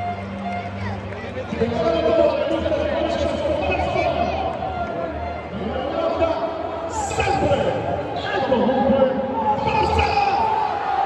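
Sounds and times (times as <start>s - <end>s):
stadium crowd chatter: 0.0s - 11.0s.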